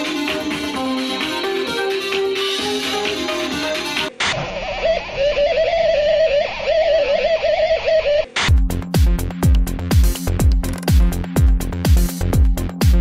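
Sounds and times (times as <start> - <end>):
electronic music: 0.0 - 4.3, 5.2 - 13.0
dance beat with deep kick drum: 8.5 - 13.0.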